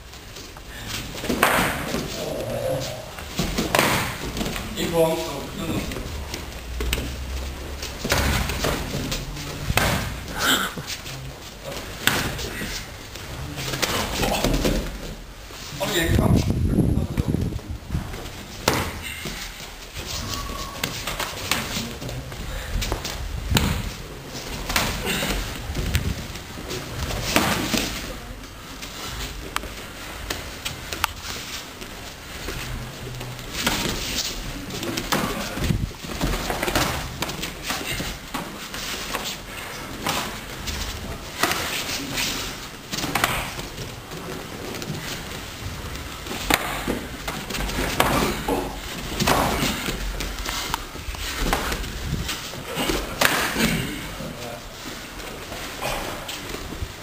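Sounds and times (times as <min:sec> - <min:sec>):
bare feet on training mats: 0:00.0 - 0:57.0.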